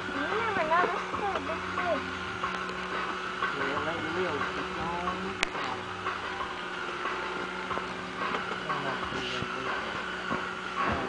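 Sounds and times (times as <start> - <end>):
fishing reel motor whining: 0.0 - 11.0.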